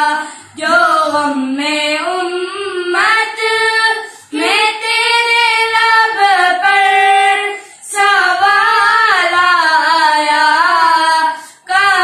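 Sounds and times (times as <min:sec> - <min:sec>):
children singing unaccompanied: 0:00.0 - 0:12.0.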